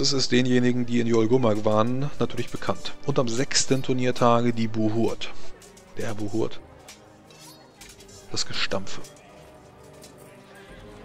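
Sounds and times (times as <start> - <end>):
soft music: 0.0 - 11.0.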